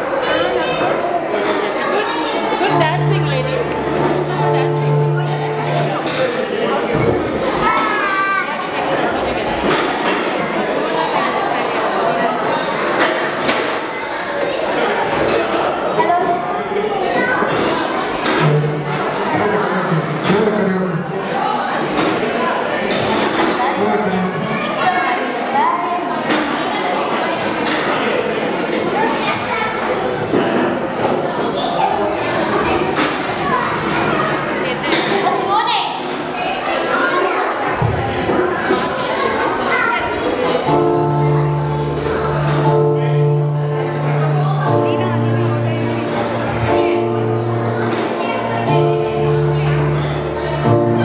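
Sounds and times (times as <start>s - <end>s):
children chattering: 0.0s - 51.0s.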